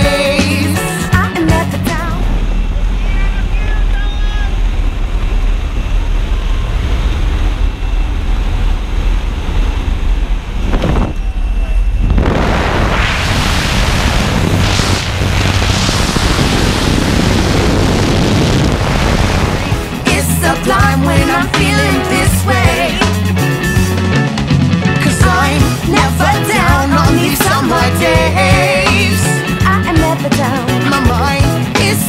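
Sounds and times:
plane engine drone: 0.0s - 31.4s
loud wind rush: 2.3s - 23.8s.

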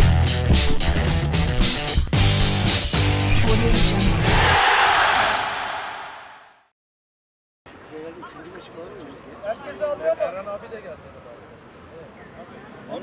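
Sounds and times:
jingle music with heavy bass: 0.0s - 4.4s.

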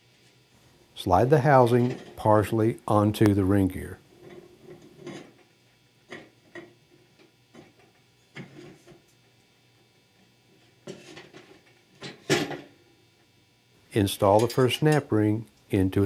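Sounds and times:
steel parts clicking and knocking: 14.2s - 15.1s.

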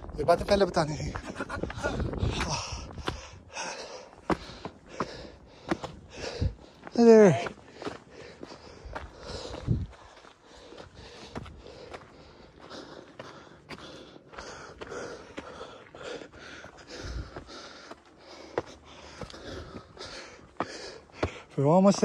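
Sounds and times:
footsteps crunching on rocky trail: 0.0s - 22.0s
heavy breathing: 1.6s - 21.6s.

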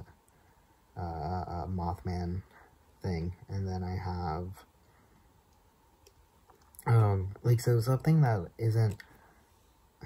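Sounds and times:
person speaking: 0.9s - 4.8s, 6.5s - 9.3s
faint clicks: 4.8s - 6.9s, 8.8s - 9.2s.

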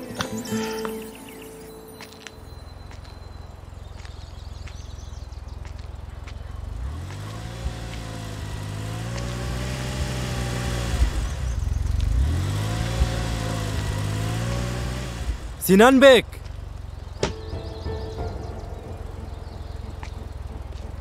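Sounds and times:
car engine accelerating: 2.7s - 21.0s.

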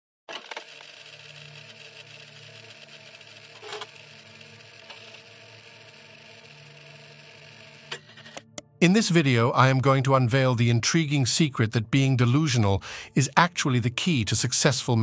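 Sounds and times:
sharp clicks: 8.4s - 8.7s.

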